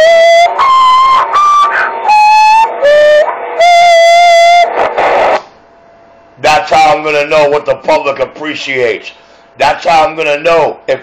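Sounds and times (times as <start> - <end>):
radio beeping tune: 0.0 - 5.4
radio hiss: 0.2 - 5.6.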